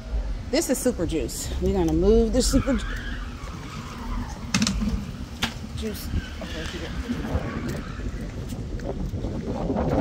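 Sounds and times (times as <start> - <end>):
car engine: 0.0 - 8.5
tyres skidding: 0.1 - 10.0
wind on microphone: 1.5 - 10.0.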